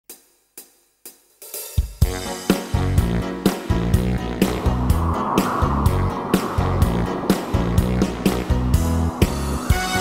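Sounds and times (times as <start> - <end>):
low drum hit: 4.3 - 9.2.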